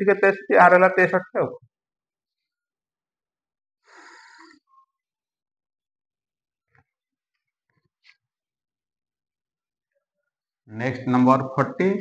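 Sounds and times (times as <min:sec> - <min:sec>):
person exhaling: 0:03.9 - 0:04.6.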